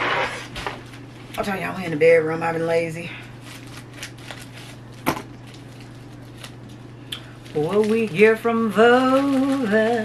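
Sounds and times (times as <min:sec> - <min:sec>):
low steady hum: 0:00.0 - 0:10.0
package wrapping rustling: 0:03.3 - 0:10.0.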